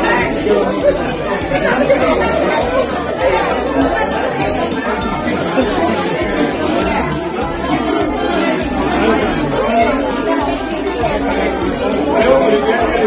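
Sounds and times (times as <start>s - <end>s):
party guests chattering: 0.0s - 13.0s.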